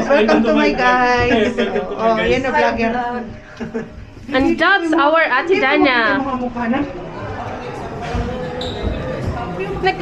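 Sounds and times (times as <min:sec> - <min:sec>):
faint voices: 0:06.8 - 0:10.0
footsteps on hard floor: 0:07.8 - 0:10.0.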